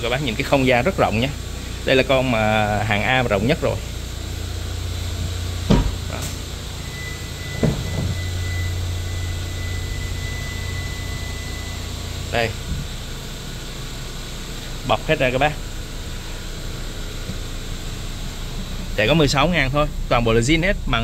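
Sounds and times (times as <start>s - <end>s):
low hum: 0.0s - 21.0s
car door shutting: 5.1s - 8.6s.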